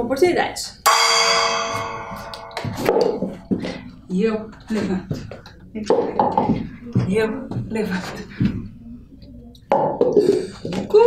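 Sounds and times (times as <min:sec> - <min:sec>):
metal percussion ringing: 0:00.9 - 0:03.9.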